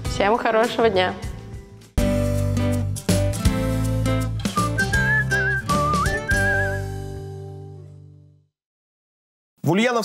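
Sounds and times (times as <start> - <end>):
instrumental backing music: 0.0 - 8.3
whistled melody with vibrato: 4.5 - 7.2.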